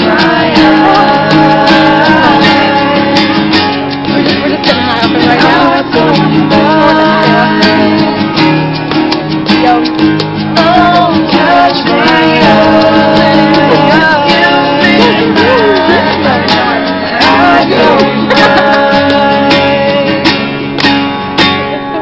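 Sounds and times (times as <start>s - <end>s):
person singing: 0.0s - 8.6s, 9.5s - 20.7s
acoustic guitars strummed: 0.0s - 22.0s.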